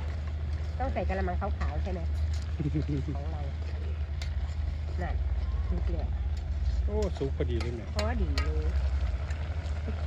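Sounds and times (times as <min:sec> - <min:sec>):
gas burner roaring: 0:00.0 - 0:10.0
ladle stirring stew in pot: 0:06.4 - 0:09.8.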